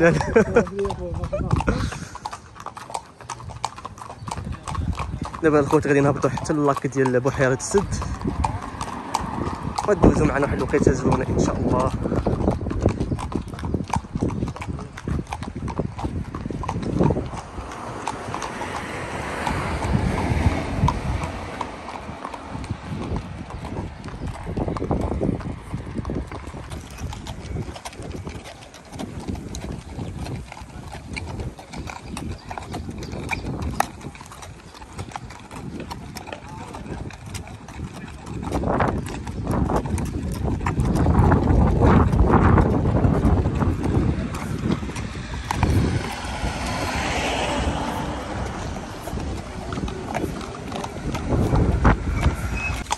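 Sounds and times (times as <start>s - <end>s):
horse hooves clip-clopping on dirt: 0.0s - 52.9s.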